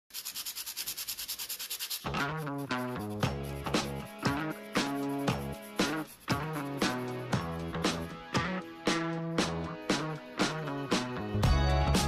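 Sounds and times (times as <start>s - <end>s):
pencil rasping on sandpaper: 0.1s - 7.6s.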